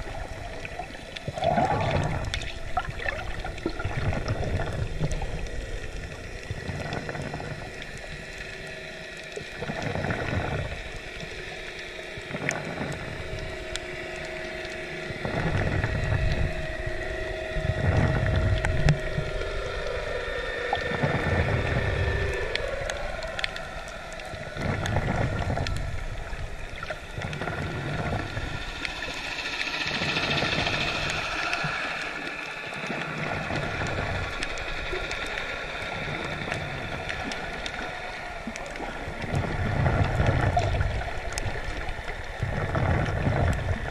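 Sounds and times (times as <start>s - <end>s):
droning hum bending in pitch: 0.0s - 43.9s
underwater water surges: 0.0s - 43.9s.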